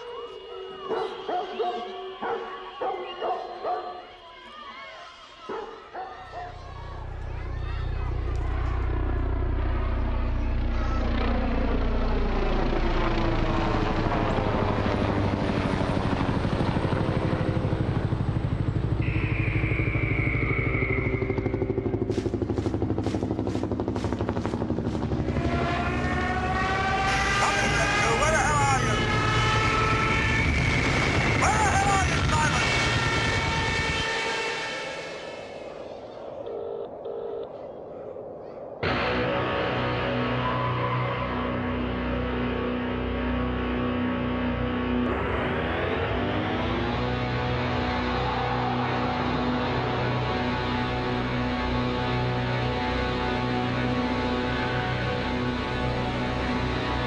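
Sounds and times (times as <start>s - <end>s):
many-toned drone: 6.6s - 57.0s
high-pitched helicopter whine: 6.7s - 57.0s
helicopter rotor chop: 7.1s - 36.4s.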